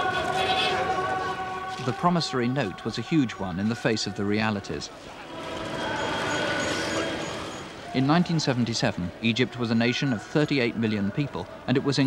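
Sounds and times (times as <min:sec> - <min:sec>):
crowd hubbub: 0:00.0 - 0:12.0
faint steady tones: 0:00.0 - 0:12.0
traffic noise: 0:00.0 - 0:12.0.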